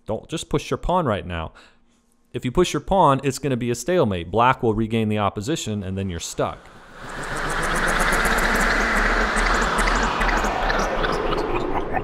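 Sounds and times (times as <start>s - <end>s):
loud rushing whoosh with crackles: 6.6s - 12.0s.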